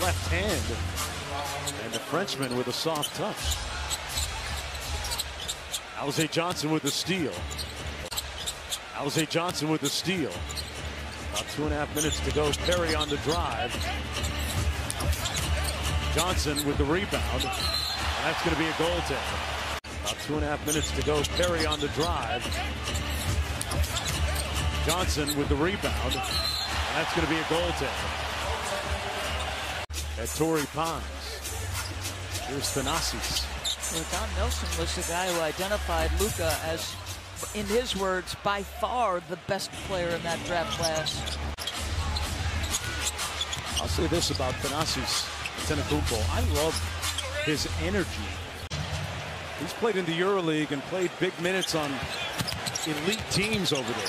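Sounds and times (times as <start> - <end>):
low arena background: 0.0 - 54.0
players' shoes on court: 48.7 - 54.0.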